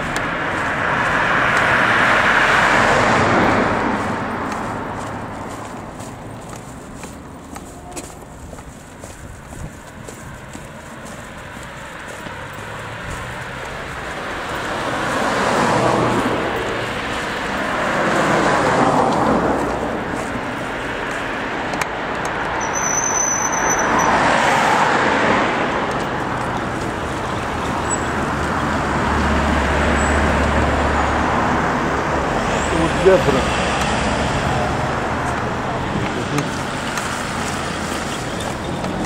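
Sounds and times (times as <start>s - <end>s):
van engine hum: 0.0s - 22.6s, 23.8s - 39.0s
cars passing: 0.0s - 39.0s.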